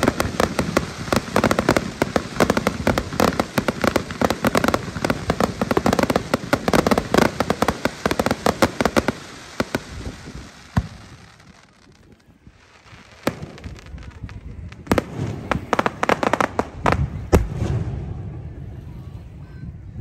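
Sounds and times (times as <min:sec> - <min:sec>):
fireworks bangs and pops: 0:00.0 - 0:18.3.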